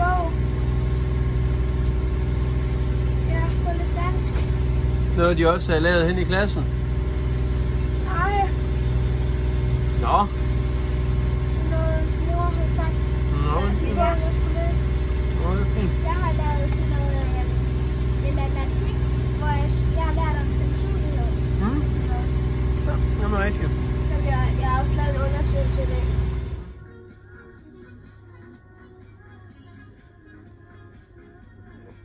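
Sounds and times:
boat engine droning: 0.0 - 26.8
faint music: 11.5 - 32.0
children's voices: 11.6 - 13.1, 16.0 - 22.4.

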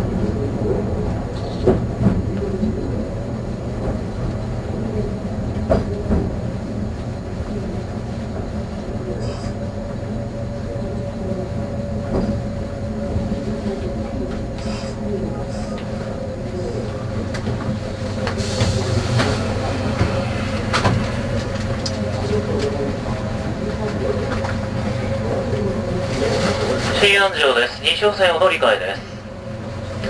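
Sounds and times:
train running gear rumble: 0.0 - 30.0
steady hum: 0.1 - 30.0.

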